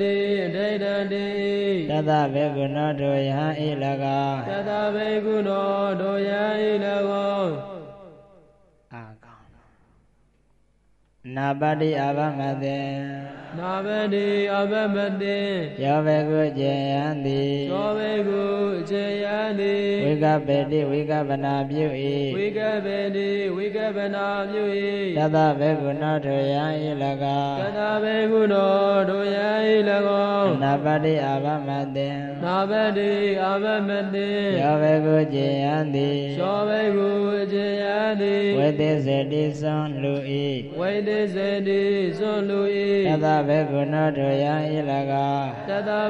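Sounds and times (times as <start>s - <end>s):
man chanting: 0.0s - 8.3s, 8.9s - 9.8s, 11.2s - 46.0s.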